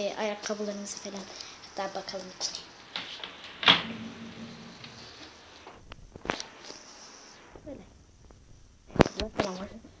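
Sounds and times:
cupboard handling noise: 3.0s - 6.4s.

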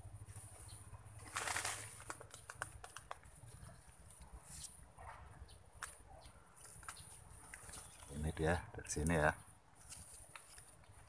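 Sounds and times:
leaves and stems rustling: 0.2s - 4.9s, 5.7s - 11.0s.

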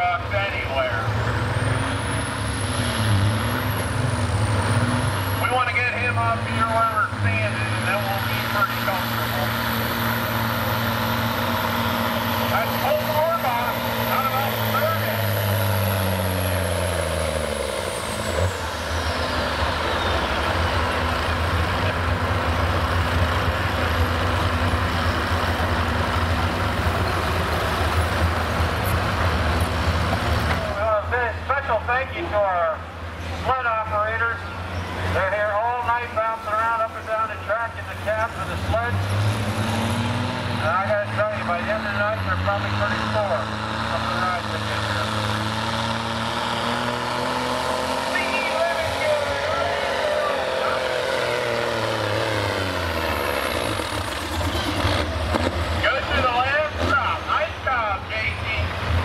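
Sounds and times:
diesel truck engine at full throttle: 0.0s - 59.0s.

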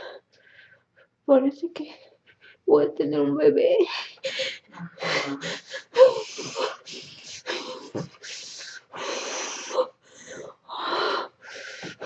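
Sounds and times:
woman breathing hard: 4.0s - 12.0s.

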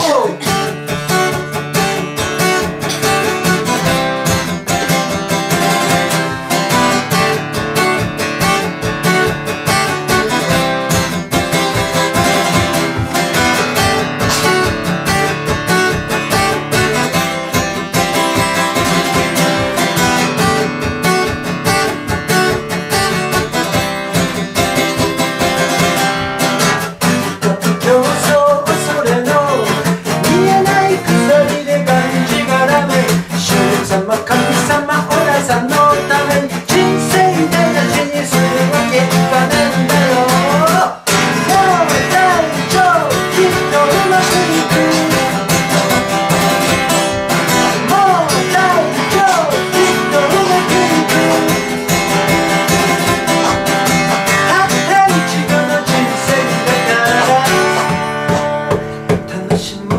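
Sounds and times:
acoustic guitar strumming: 0.0s - 59.9s
man singing: 0.0s - 59.9s.

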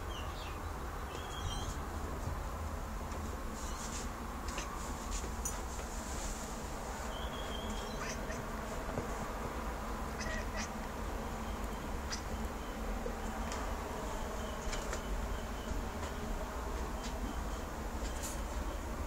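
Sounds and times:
steady low hum: 0.0s - 19.0s
cat chirping: 7.2s - 8.4s, 10.2s - 10.7s.

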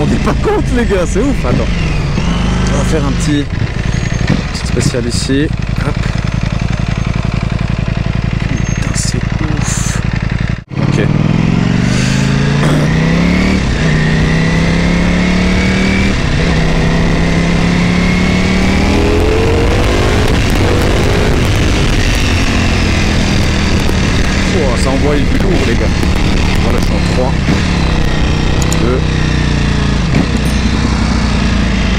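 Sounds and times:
motorcycle engine accelerating: 0.0s - 31.9s.

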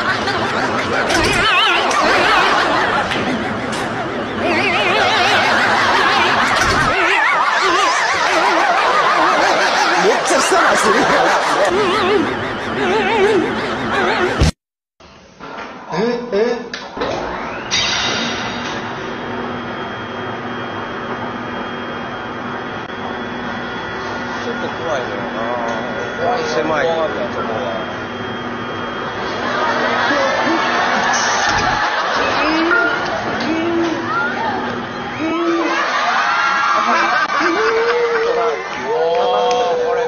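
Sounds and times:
medical scanner humming: 0.0s - 14.6s, 18.6s - 36.1s
warbling snickering laughter: 0.0s - 14.6s, 29.1s - 33.8s, 35.2s - 38.7s.

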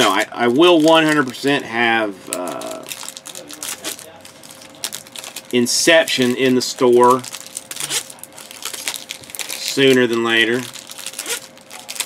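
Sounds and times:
foil wrappers crinkling: 0.0s - 12.0s.

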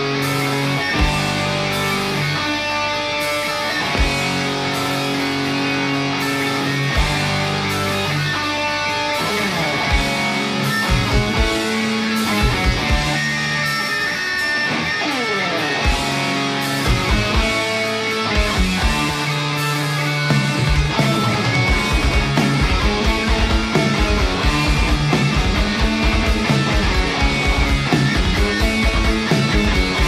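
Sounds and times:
bass: 0.0s - 30.0s
drums: 0.0s - 30.0s
electric guitars holding long notes: 0.0s - 30.0s.

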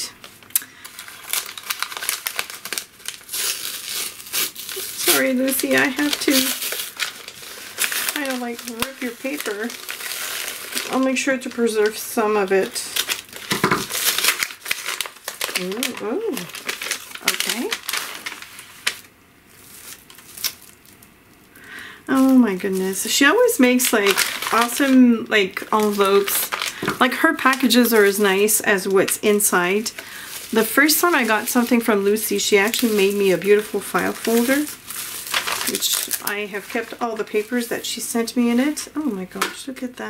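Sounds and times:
paper wrapping crinkling: 0.1s - 21.5s, 22.1s - 39.5s
sharp crackles: 0.4s - 12.0s, 12.6s - 21.1s.

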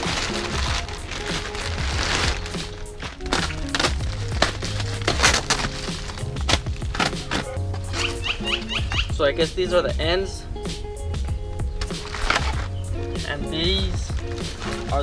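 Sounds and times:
plastic bags crinkling: 0.0s - 8.1s, 11.8s - 12.8s, 14.1s - 15.0s
background music with bass: 0.0s - 15.0s.

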